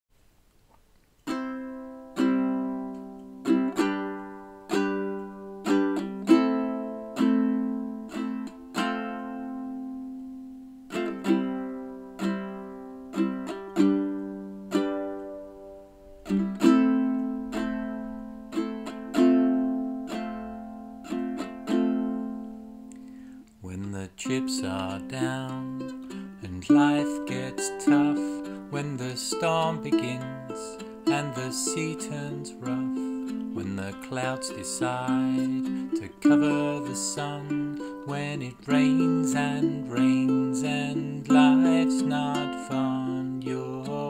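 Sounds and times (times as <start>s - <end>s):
plucked string instrument: 1.2s - 44.0s.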